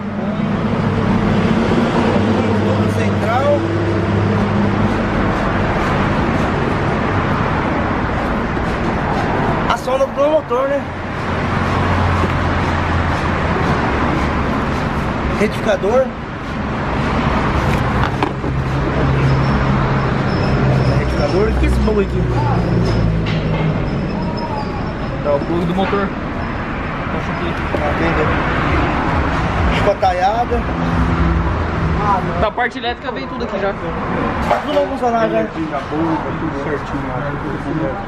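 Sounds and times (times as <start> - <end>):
broad noisy wash: 0.0 - 22.8
constant background noise: 0.0 - 38.0.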